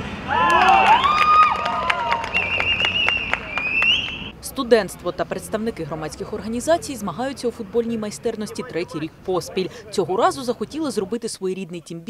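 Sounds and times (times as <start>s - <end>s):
players shouting and cheering: 0.3s - 4.1s
sharp claps: 0.4s - 4.3s.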